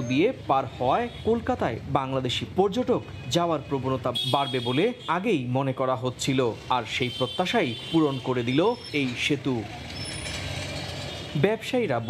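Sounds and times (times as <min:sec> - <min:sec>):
traffic engines and road noise: 0:00.0 - 0:12.0.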